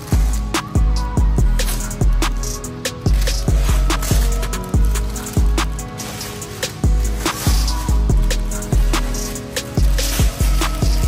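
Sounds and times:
hi-hat ticks: 0.0s - 11.0s.

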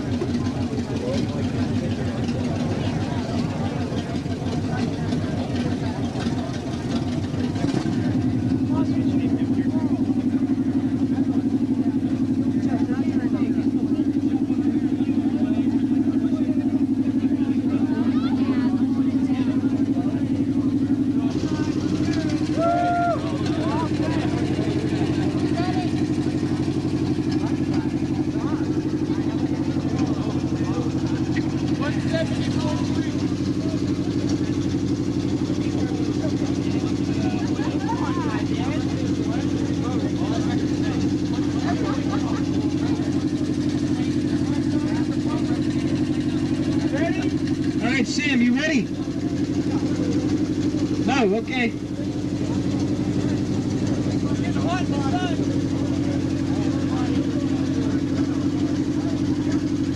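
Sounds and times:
faint voices: 0.0s - 59.9s
loud steady bass tone: 0.0s - 59.9s.

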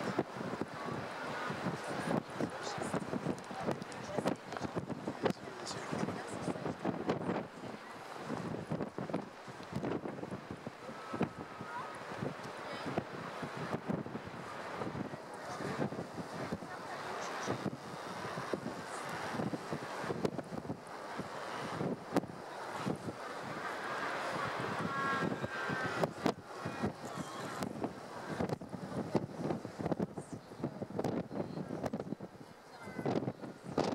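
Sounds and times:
wind buffeting microphone: 0.0s - 33.9s.

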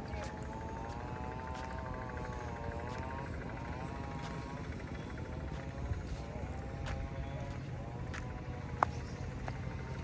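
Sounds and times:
distant small engine buzzing: 0.0s - 10.0s.

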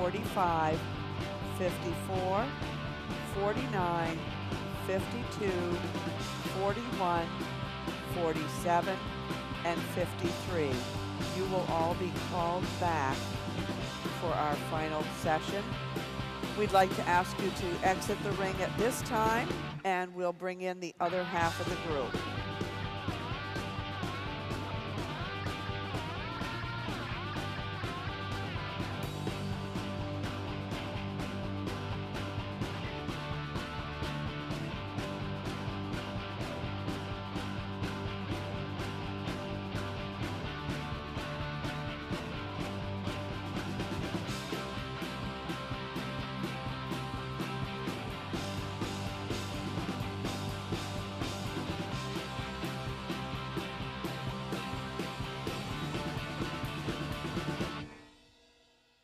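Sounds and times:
rock music with guitar: 0.0s - 19.8s, 21.0s - 58.1s.

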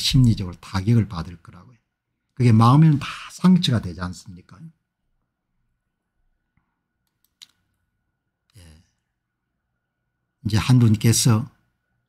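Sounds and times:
faint clicks: 6.6s - 7.8s.

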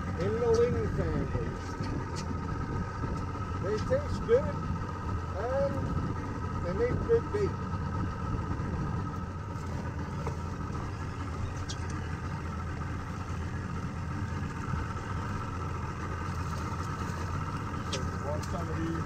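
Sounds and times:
boat engine idling: 0.0s - 19.0s.

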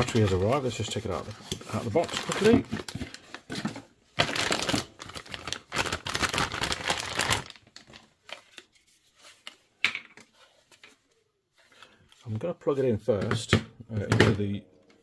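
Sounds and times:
plastic bag rustling: 0.0s - 9.0s.

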